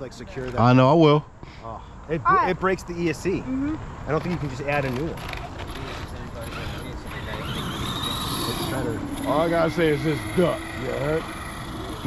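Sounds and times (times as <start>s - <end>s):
electric motor whining: 5.7s - 12.0s.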